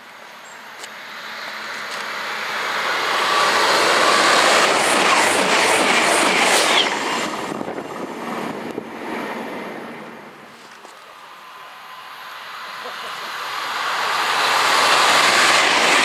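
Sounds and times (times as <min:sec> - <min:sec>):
train rushing past: 0:01.0 - 0:10.5, 0:11.1 - 0:16.0.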